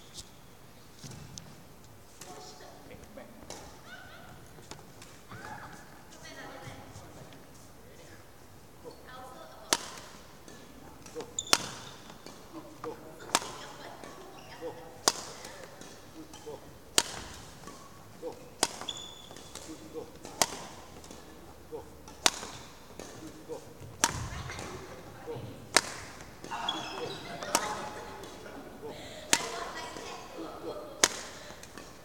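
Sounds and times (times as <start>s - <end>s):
racket striking shuttlecock: 9.7s - 32.0s.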